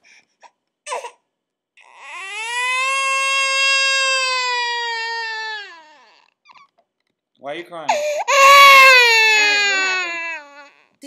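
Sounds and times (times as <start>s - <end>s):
toddler crying: 1.8s - 6.7s, 8.0s - 10.9s.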